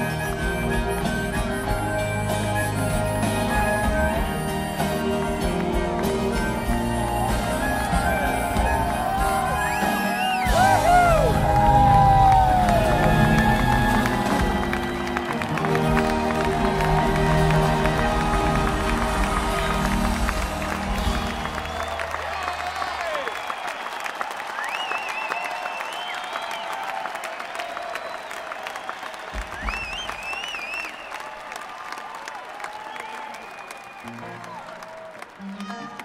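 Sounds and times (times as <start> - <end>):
live band playing: 0.0 - 23.2, 34.0 - 36.0
audience applauding and cheering: 0.0 - 36.0.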